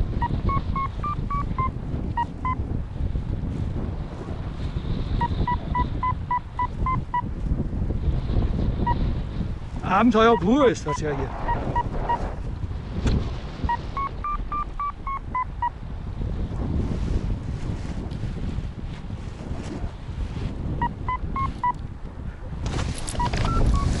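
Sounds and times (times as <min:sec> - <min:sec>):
wind rumble on microphone: 0:00.0 - 0:24.0
variometer short beeps: 0:00.2 - 0:02.6, 0:05.2 - 0:07.3, 0:10.3 - 0:12.2, 0:13.7 - 0:15.7, 0:20.8 - 0:21.8, 0:23.1 - 0:24.0.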